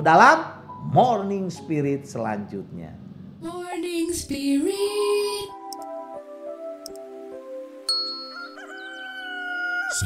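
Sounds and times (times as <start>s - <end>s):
soft background music: 0.0s - 10.0s
rooster crowing: 8.2s - 10.0s.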